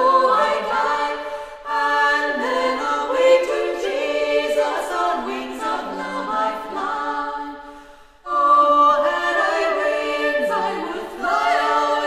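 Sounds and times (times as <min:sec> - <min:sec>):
women singing a cappella: 0:00.0 - 0:12.0.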